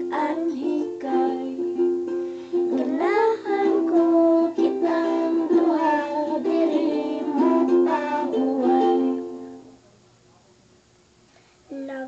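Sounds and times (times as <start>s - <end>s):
girl singing: 0.0s - 9.6s, 11.7s - 12.0s.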